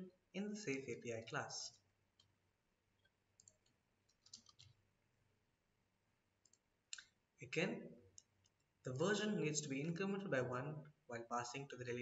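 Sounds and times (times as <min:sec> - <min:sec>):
computer mouse clicks: 0:03.0 - 0:04.8, 0:06.4 - 0:07.2.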